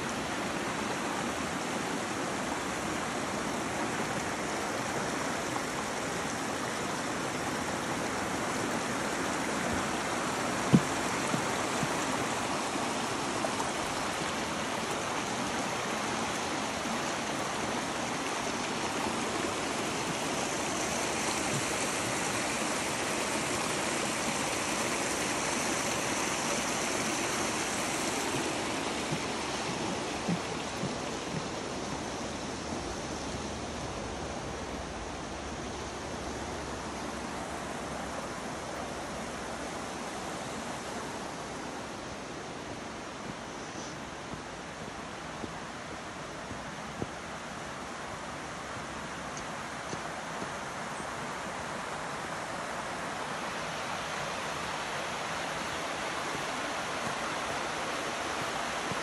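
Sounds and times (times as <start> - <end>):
creek water rushing over rocks: 0.0 - 59.0.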